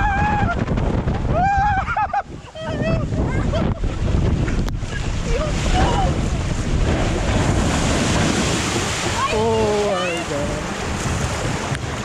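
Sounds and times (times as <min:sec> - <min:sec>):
wind buffeting microphone: 0:00.0 - 0:12.0
rushing splashing water: 0:02.2 - 0:12.0.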